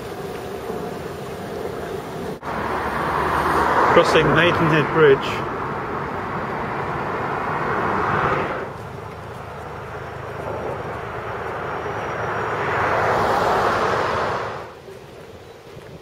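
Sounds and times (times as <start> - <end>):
passing vehicle rushing: 0.0 - 14.8.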